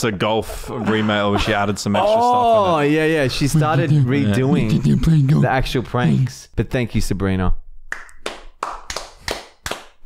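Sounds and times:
people clapping hands: 7.9 - 10.0.

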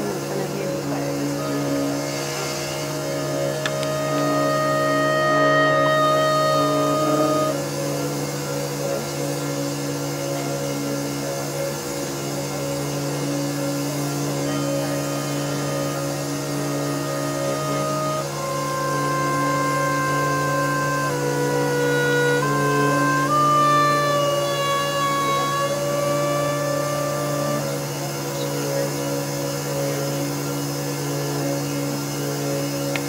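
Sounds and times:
higher tones: 0.0 - 9.3, 13.6 - 28.6
drone music with held tones: 0.0 - 33.0
steady low note: 0.0 - 33.0.

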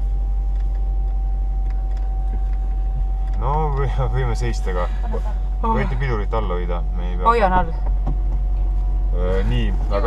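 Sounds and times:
car engine idling hum: 0.0 - 10.0
parking sensor continuous tone: 0.0 - 10.0.

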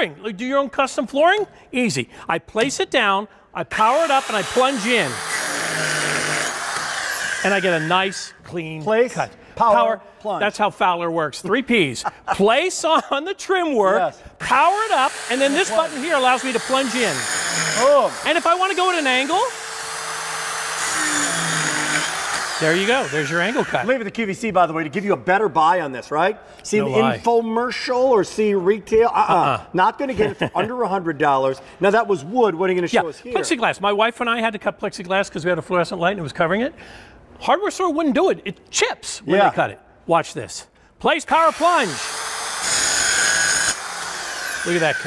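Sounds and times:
circular saw cutting wood: 3.8 - 8.4, 14.5 - 24.0, 41.3 - 45.0.

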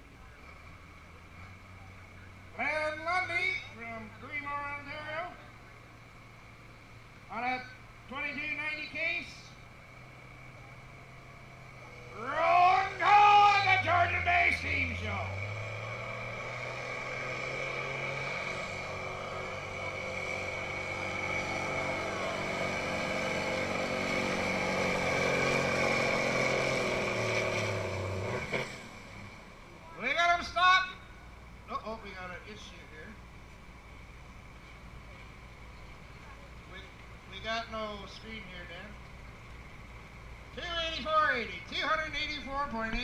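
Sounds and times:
tractor engine working under load: 9.7 - 30.8.

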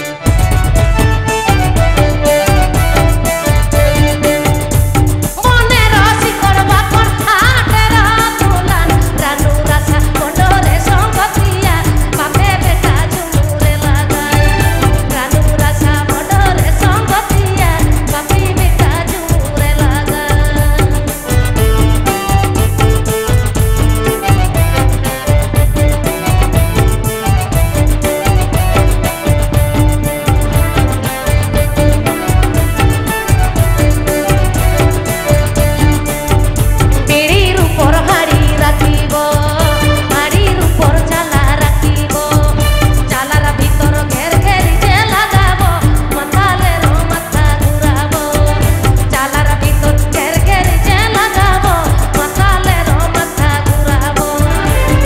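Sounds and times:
keyboard: 0.0 - 55.0
steady drum beat: 0.0 - 55.0.

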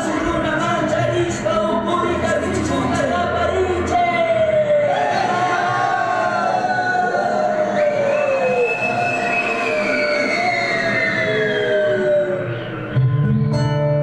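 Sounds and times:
wailing sliding tones: 4.6 - 13.1.

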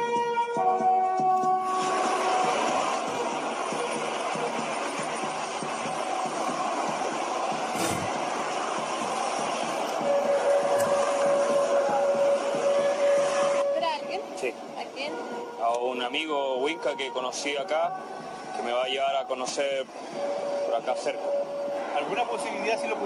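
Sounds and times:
passing traffic: 0.0 - 23.0.

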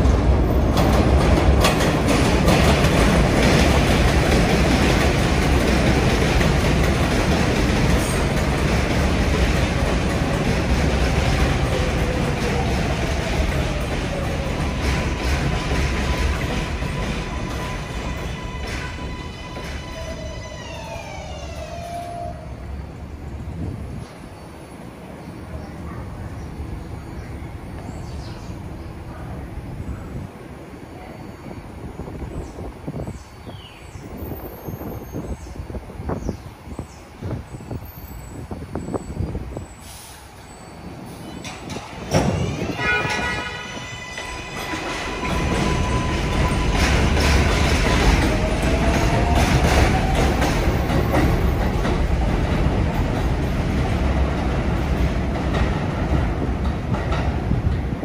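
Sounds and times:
rumble of train wheels: 0.0 - 58.0.

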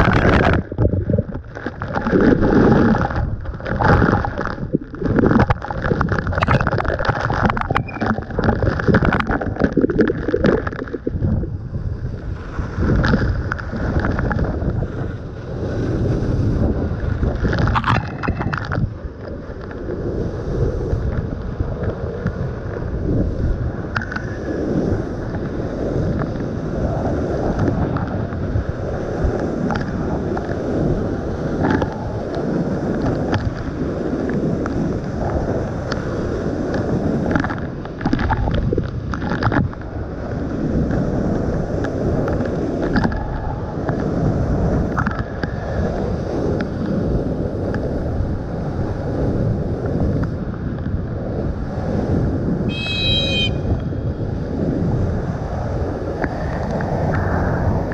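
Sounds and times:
wind buffeting microphone: 0.0 - 57.9
brief high squeak: 7.7 - 8.1, 52.7 - 53.8.

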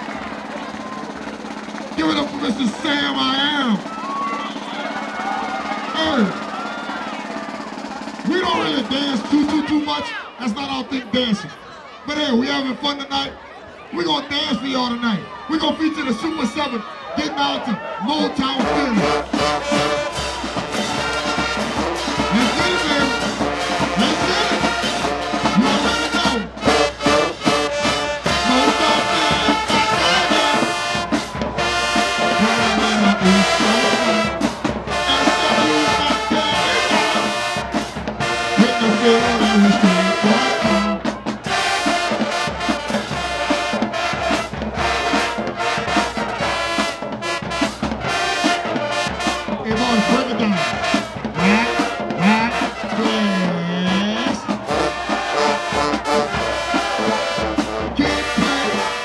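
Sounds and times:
drumline playing: 0.0 - 59.0
brass instruments playing: 18.3 - 59.0.

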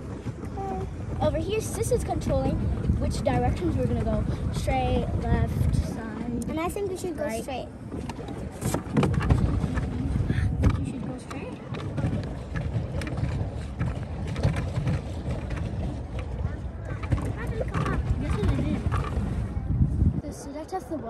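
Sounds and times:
water sloshing and splashing: 0.0 - 21.0
wind rumble on microphone: 0.0 - 21.0.

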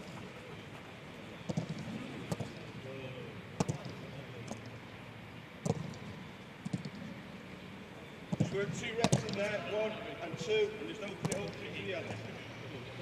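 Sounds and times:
faint distant voices: 0.0 - 13.0
open-air background: 0.0 - 13.0.

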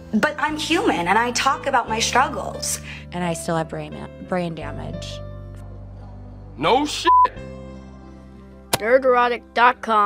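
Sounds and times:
electronic beep: 7.1 - 7.3.

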